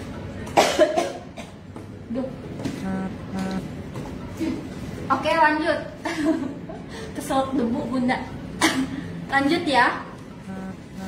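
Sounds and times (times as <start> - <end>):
woman coughing: 0.5 - 1.6, 8.6 - 9.1.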